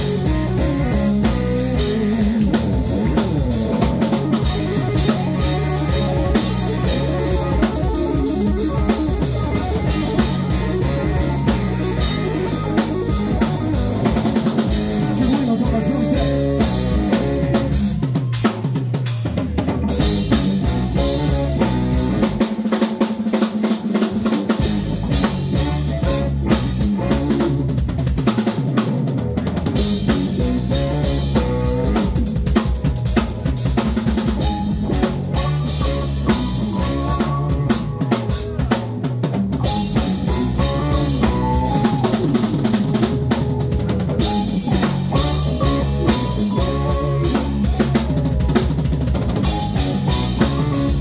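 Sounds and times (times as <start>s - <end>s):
drum kit: 0.0s - 51.0s
funk band playing: 0.0s - 51.0s.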